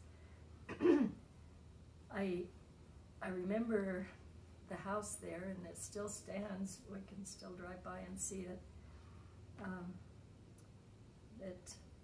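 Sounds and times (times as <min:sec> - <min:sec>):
person clearing throat: 0:00.7 - 0:01.2.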